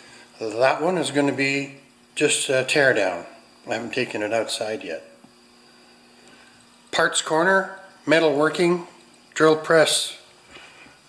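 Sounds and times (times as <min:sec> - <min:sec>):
faint steady hum: 0:00.0 - 0:11.0
man talking: 0:00.4 - 0:05.2, 0:06.9 - 0:10.3.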